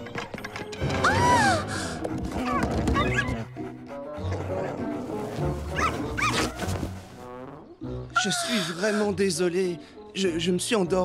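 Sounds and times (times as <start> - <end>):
background music: 0.0 - 11.0
cartoon puppies yipping: 2.4 - 3.5, 5.7 - 6.6.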